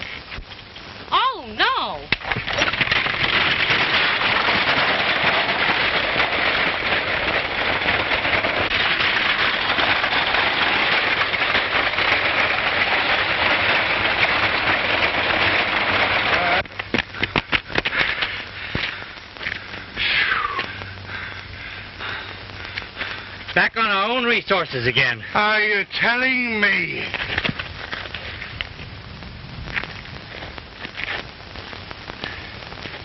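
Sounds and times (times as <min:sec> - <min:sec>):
wooden wagon rattling: 0:02.1 - 0:18.9.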